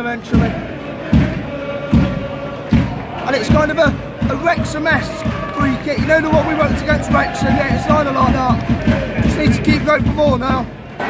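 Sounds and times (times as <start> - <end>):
slow drum beat: 0.4 - 10.8.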